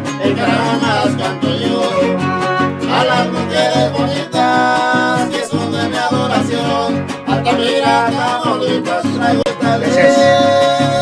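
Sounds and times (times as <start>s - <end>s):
strummed guitars: 0.0s - 11.0s
violin melody: 1.6s - 4.1s, 9.9s - 11.0s.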